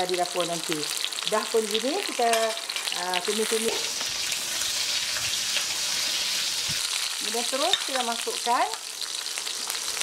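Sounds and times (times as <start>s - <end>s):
stalks sizzling in hot oil: 0.0s - 10.0s.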